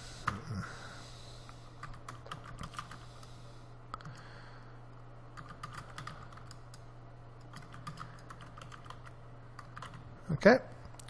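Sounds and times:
keyboard typing: 1.8 - 3.0, 5.4 - 10.0.

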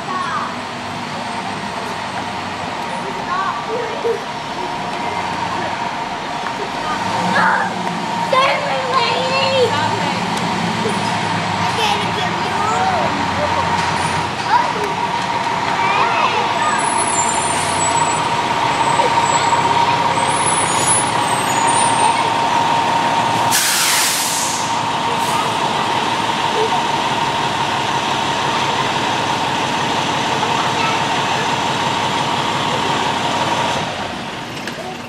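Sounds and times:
diesel engine running: 0.0 - 35.0
air brakes hissing: 23.4 - 25.6.

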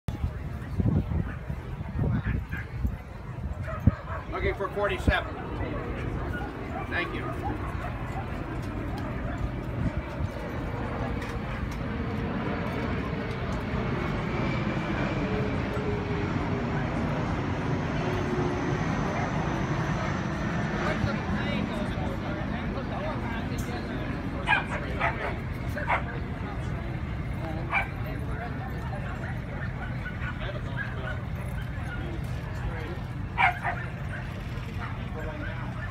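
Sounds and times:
murmur of background voices: 0.1 - 35.9
dog barking: 3.6 - 4.3, 24.5 - 26.1, 27.7 - 27.9, 33.4 - 33.9.

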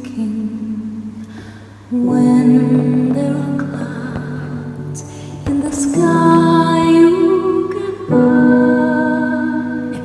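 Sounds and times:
slow music with held notes: 0.0 - 10.0
person singing: 1.9 - 10.0.

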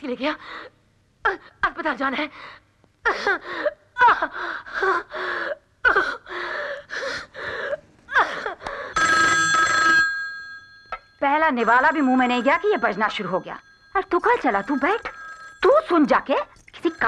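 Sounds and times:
telephone ringing: 8.9 - 17.0.

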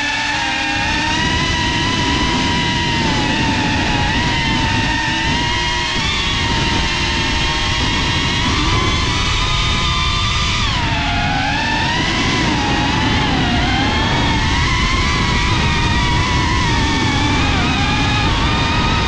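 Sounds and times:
drone motors whining: 0.0 - 19.0
wind rumble on microphone: 0.0 - 19.0.

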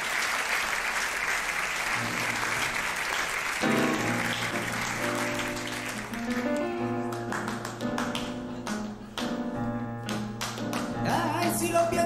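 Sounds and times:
flamenco hand clapping: 0.0 - 12.0.

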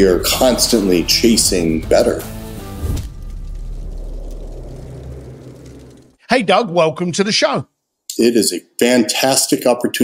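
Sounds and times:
low rumble: 1.3 - 6.2.

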